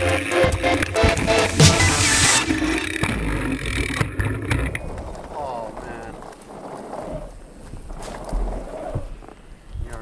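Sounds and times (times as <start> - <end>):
bike rattles: 2.5 - 10.0.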